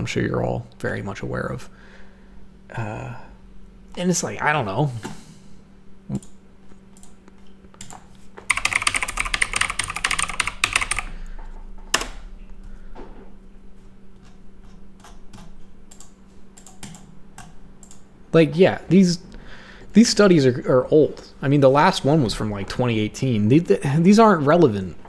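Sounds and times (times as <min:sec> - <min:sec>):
typing on computer keyboard: 0:07.8 - 0:11.2, 0:11.9 - 0:12.2, 0:15.0 - 0:18.0.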